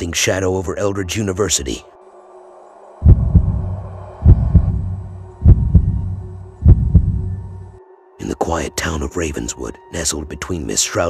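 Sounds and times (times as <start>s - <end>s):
heartbeat thumps: 3.0s - 7.4s.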